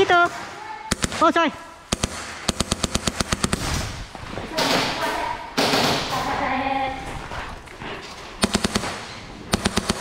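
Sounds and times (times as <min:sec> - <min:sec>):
airsoft rifle rapid shots: 0:00.9 - 0:04.0, 0:05.6 - 0:06.1, 0:08.4 - 0:10.0.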